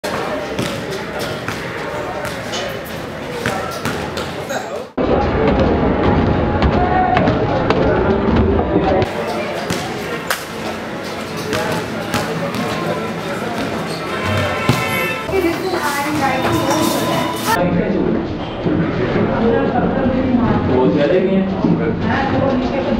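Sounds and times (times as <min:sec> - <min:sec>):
crowd chatter: 0:00.0 - 0:22.9.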